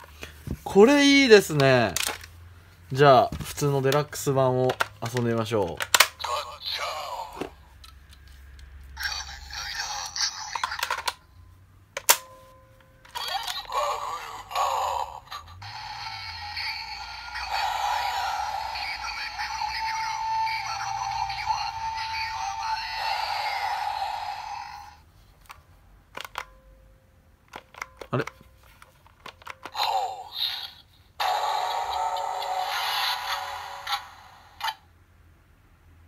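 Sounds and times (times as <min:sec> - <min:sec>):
toy electronic voice calls: 0:06.2 - 0:07.6, 0:09.0 - 0:11.2, 0:13.1 - 0:25.0, 0:29.6 - 0:34.9
toy music and effects: 0:09.0 - 0:11.3, 0:13.0 - 0:25.0, 0:29.5 - 0:34.8.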